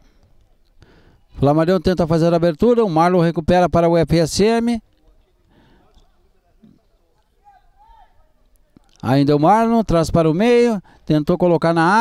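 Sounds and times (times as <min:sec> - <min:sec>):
faint open-air ambience: 0:00.0 - 0:12.0.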